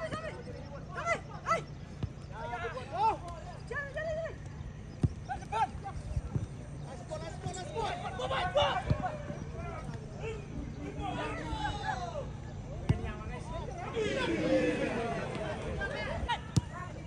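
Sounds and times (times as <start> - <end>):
footballers shouting calls: 0.0 - 17.0.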